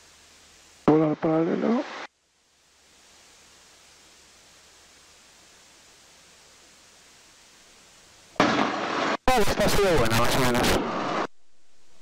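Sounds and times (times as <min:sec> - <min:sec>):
faint steady hiss: 0:00.0 - 0:12.0
loud rush of noise: 0:08.4 - 0:11.3.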